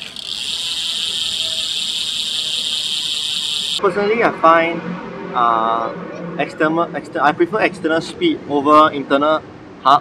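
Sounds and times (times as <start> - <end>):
freewheel ratchet buzzing: 0.0 - 3.8.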